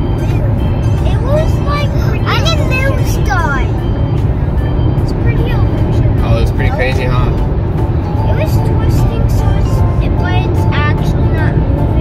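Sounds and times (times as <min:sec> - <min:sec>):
car cabin road and engine rumble: 0:00.0 - 0:12.0
child's sing-song voice: 0:00.2 - 0:03.7, 0:08.3 - 0:12.0.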